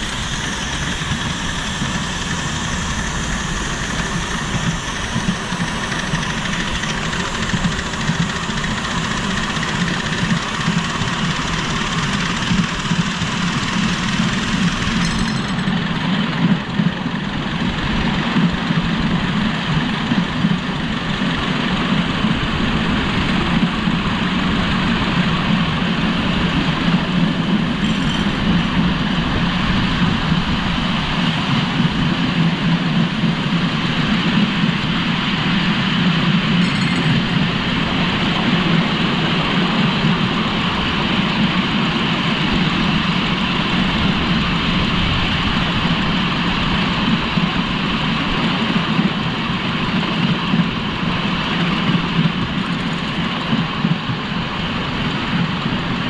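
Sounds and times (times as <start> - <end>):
steam locomotive running rumble: 0.0 - 56.0
wheels clattering on rails: 0.0 - 56.0.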